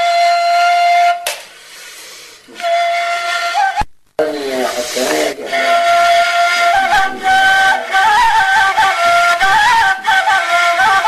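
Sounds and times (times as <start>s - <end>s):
reed flute held notes: 0.0s - 11.0s
wavering singing-like tones: 4.4s - 11.0s.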